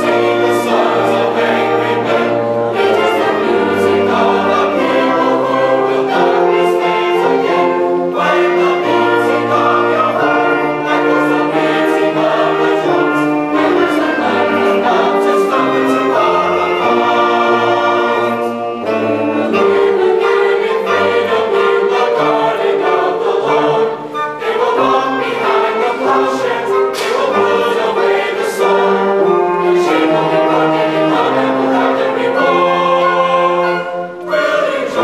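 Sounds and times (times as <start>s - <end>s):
choir singing in harmony: 0.0s - 35.0s
concert band of saxophones and brass: 0.0s - 35.0s.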